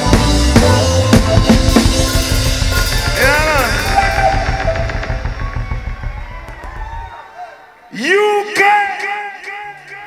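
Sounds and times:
live reggae band playing: 0.0s - 7.4s.

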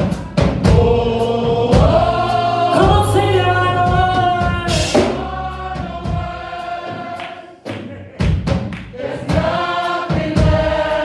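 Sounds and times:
heavy low thumps: 0.0s - 6.6s
gospel band and singers: 0.0s - 11.0s.

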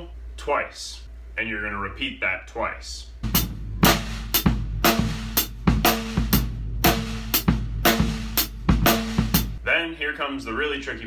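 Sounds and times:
bass drum strokes: 3.2s - 9.6s
snare drum backbeat: 3.2s - 9.6s.

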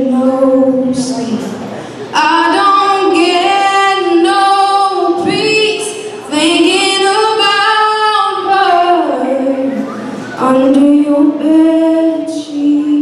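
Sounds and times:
woman singing country song: 0.0s - 1.5s, 2.1s - 9.8s, 10.4s - 13.0s.

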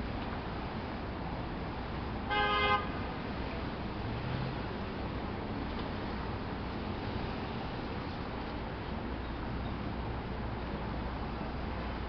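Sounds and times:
street traffic noise: 0.0s - 12.0s
car horn honk: 2.3s - 3.0s.

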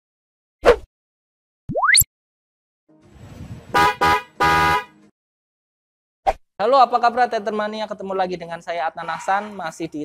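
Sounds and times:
horn honks: 3.7s - 5.1s.

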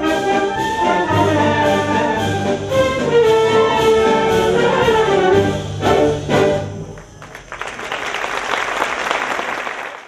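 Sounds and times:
audience applauding: 7.0s - 10.0s.

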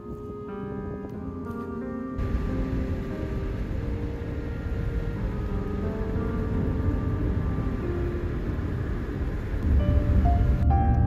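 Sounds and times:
road and engine rumble: 0.9s - 11.0s.

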